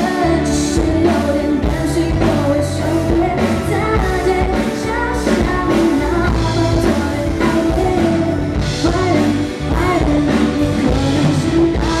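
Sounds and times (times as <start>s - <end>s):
band playing: 0.0s - 12.0s
drum kit beat: 0.0s - 12.0s
woman singing into a microphone: 0.0s - 12.0s.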